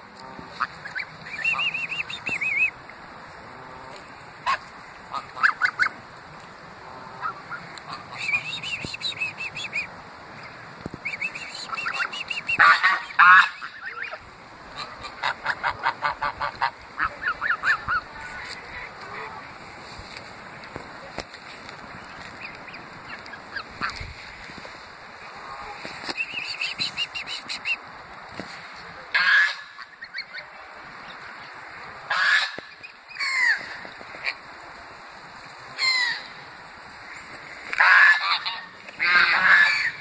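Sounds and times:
geese honking: 0.2 - 2.7, 3.5 - 6.0, 6.8 - 9.8, 11.1 - 19.6, 29.1 - 30.4, 32.1 - 34.4, 37.0 - 40.0.

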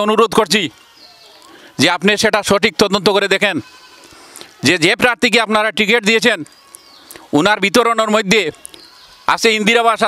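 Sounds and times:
man speaking into microphone: 0.0 - 0.7, 1.8 - 3.7, 4.6 - 6.5, 7.3 - 8.6, 9.3 - 10.0.

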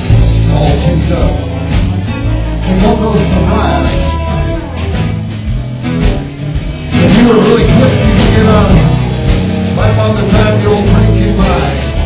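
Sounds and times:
guitar: 0.0 - 12.0
live blues band: 0.0 - 12.0
person singing: 0.1 - 5.0, 6.8 - 12.0.

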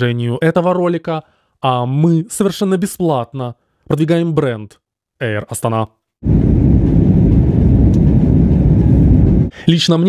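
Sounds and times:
airliner cabin engine rumble: 6.2 - 9.6.

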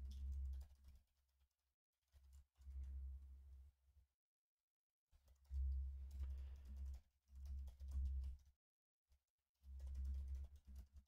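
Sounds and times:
typing on computer keyboard: 9.8 - 11.0.

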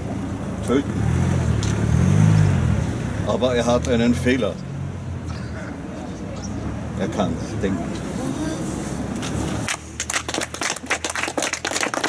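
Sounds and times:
vehicle engine passing: 0.6 - 12.0.

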